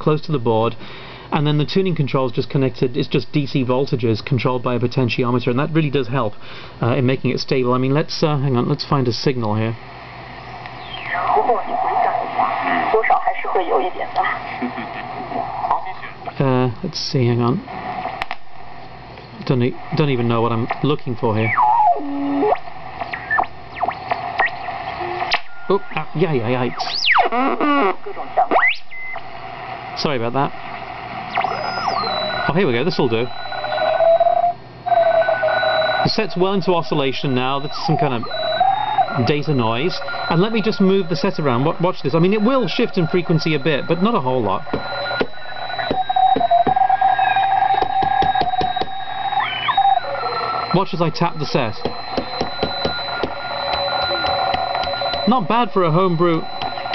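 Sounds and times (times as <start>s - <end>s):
steady radio hiss: 0.0s - 56.9s
sharp radio clicks: 10.4s - 16.4s, 17.8s - 19.9s, 20.6s - 21.1s, 22.4s - 26.1s, 44.6s - 55.3s, 56.2s - 56.9s
radio whistles sweeping in pitch: 10.5s - 13.9s, 21.4s - 25.9s, 26.6s - 29.2s, 31.3s - 56.9s.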